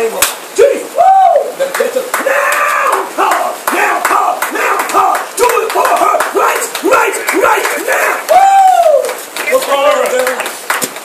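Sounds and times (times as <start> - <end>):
sharp clapping: 1.7 - 11.0
people shouting excitedly: 2.2 - 9.2.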